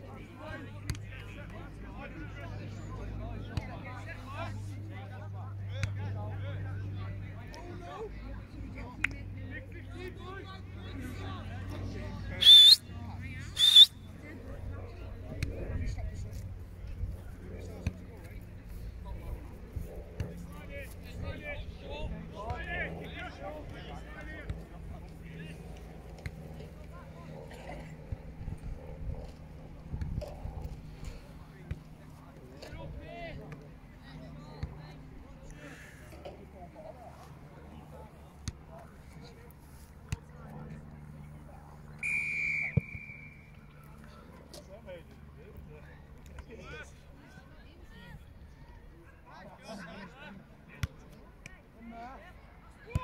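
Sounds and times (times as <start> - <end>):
distant voices: 0.0 - 49.0
faint field noise: 0.0 - 53.0
referee's whistle blast: 13.6 - 13.9, 42.0 - 43.5
wind rumble on microphone: 28.2 - 31.0.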